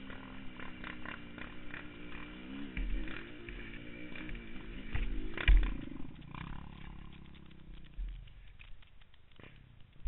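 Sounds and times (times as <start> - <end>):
quad engine running hard: 0.0 - 8.1.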